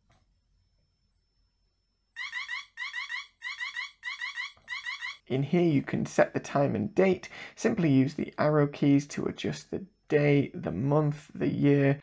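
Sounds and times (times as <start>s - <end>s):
electronic alarm beeps: 2.2s - 5.2s.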